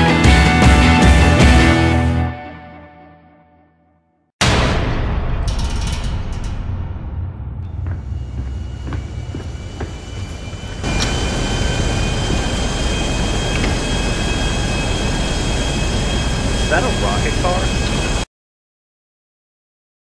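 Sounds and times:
engine deep rumble: 0:06.4 - 0:18.2
high whine: 0:07.3 - 0:18.3
door opening: 0:13.2 - 0:14.0.

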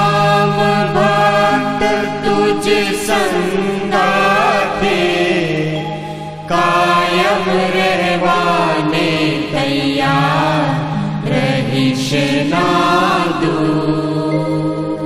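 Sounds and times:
voices singing devotional song: 0:00.0 - 0:15.0.

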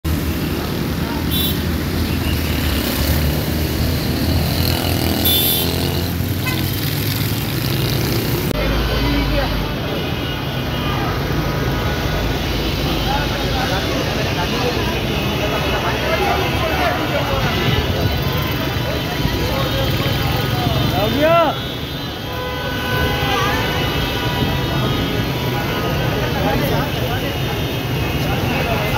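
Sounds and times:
vehicle and motorcycle engines: 0:00.1 - 0:22.2, 0:23.0 - 0:28.9
crowd talking: 0:05.8 - 0:22.3, 0:23.0 - 0:28.9.

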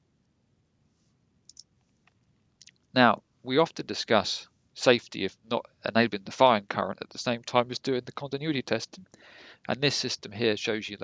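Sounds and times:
faint short clicks: 0:01.5 - 0:02.9.

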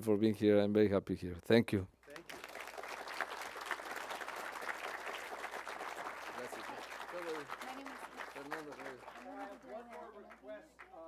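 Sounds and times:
audience applauding: 0:02.1 - 0:11.0.

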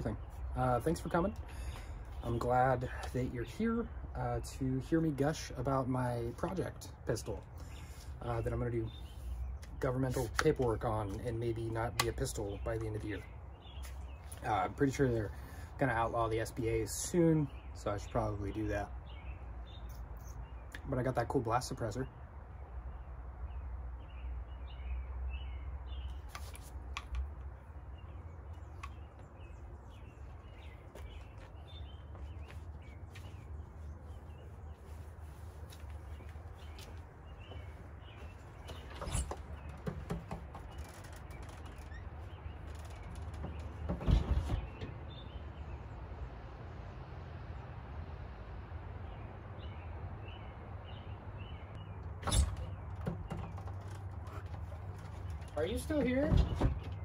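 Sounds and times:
small birds chirping: 0:00.0 - 0:47.8, 0:48.9 - 0:57.0.

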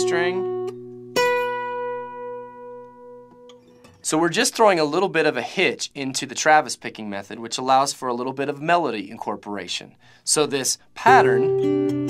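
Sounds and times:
acoustic guitar string ringing: 0:00.5 - 0:04.0.

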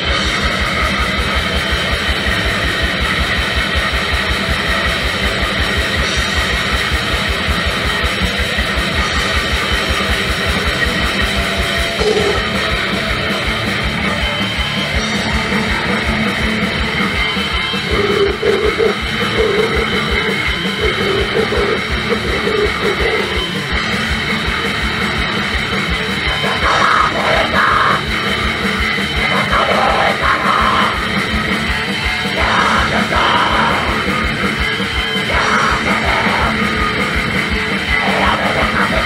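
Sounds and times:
distorted electric guitars: 0:00.0 - 0:39.0
fast drum-kit beat: 0:00.0 - 0:39.0.

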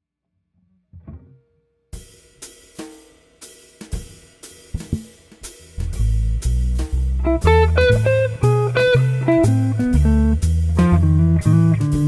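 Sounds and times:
drum kit beat with cymbals: 0:02.0 - 0:12.0
loud bass notes: 0:04.8 - 0:12.0.

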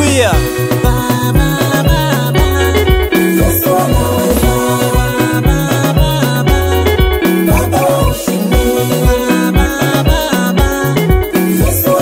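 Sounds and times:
bass: 0:00.0 - 0:12.0
steady drum beat: 0:00.2 - 0:08.7
keyboard tones: 0:03.9 - 0:05.2.

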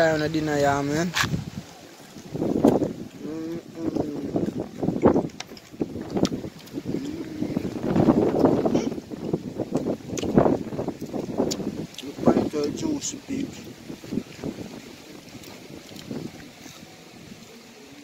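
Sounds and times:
wind buffeting microphone: 0:00.0 - 0:18.0
faint voices: 0:06.9 - 0:07.9.

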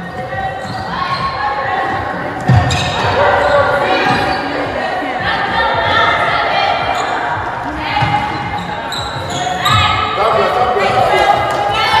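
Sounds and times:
players shouting in echoing hall: 0:00.0 - 0:12.0.

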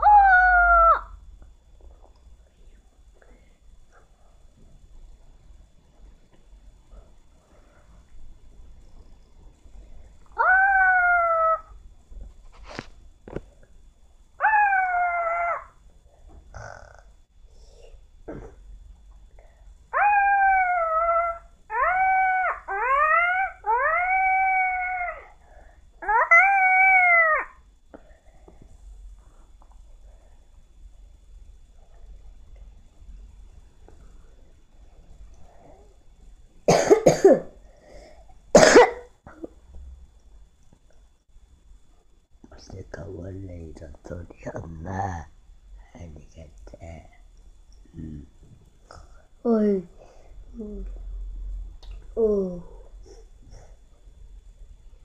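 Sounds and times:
long howls: 0:00.0 - 0:01.2, 0:10.3 - 0:11.8, 0:14.4 - 0:15.8, 0:19.9 - 0:27.7
person coughing: 0:18.3 - 0:18.6, 0:36.7 - 0:37.6, 0:38.6 - 0:39.6.

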